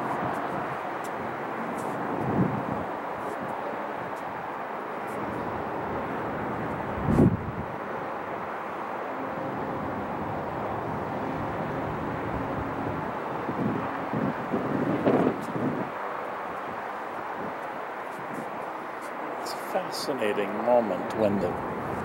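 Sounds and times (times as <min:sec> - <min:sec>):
distant city traffic hum: 0:00.0 - 0:22.0.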